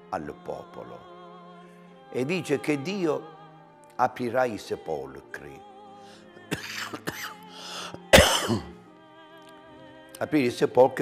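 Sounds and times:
soft background music: 0.0s - 11.0s
man coughing: 6.5s - 7.4s, 8.1s - 8.8s.

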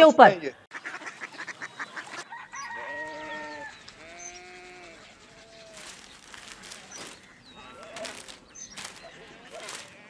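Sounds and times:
chickens clucking: 0.8s - 10.0s
rooster crowing: 2.3s - 3.8s.

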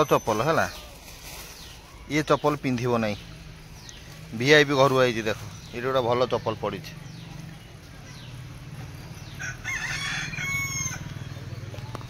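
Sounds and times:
rooster crowing: 9.2s - 11.4s.

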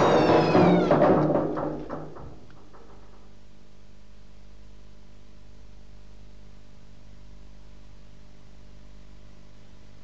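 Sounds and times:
monster shrieking wail: 0.0s - 1.2s.

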